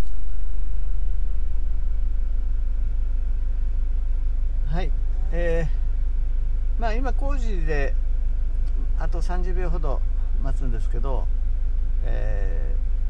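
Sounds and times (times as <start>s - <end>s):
van engine idling: 1.7s - 13.0s
man's voice: 4.7s - 5.8s, 12.0s - 12.8s.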